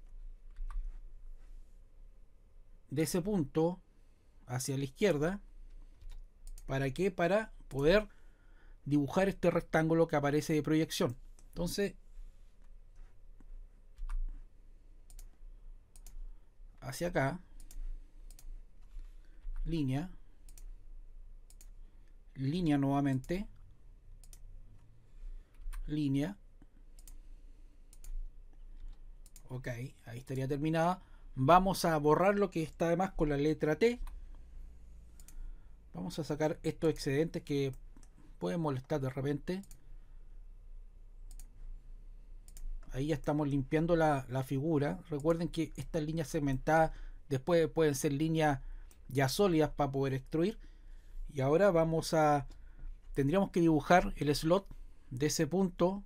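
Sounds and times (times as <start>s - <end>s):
computer mouse clicking: 0.0s - 1.0s, 5.7s - 6.7s, 12.6s - 14.4s, 15.0s - 16.3s, 17.5s - 19.0s, 20.4s - 20.8s, 21.5s - 22.2s, 24.1s - 24.9s, 26.6s - 27.2s, 27.9s - 29.5s, 35.1s - 35.4s, 39.6s - 39.9s, 41.3s - 41.6s, 42.4s - 42.9s.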